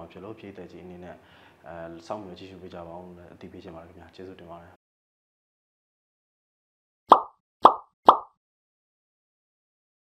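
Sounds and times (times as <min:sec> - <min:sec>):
pop sound effects: 0:07.1 - 0:08.4.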